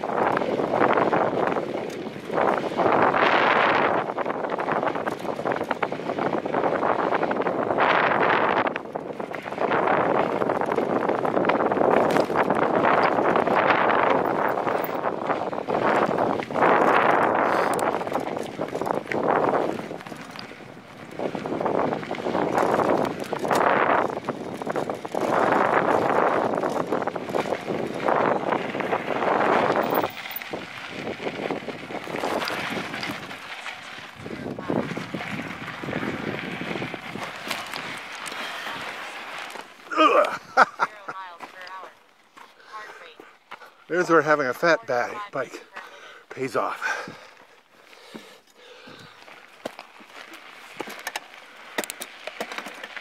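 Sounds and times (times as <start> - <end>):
bike rattling clicks: 0.0 - 34.2, 34.9 - 40.4, 48.0 - 53.0
wind buffeting microphone: 0.0 - 42.0, 46.4 - 47.4, 48.0 - 51.0
tyres crunching on dirt: 0.0 - 53.0.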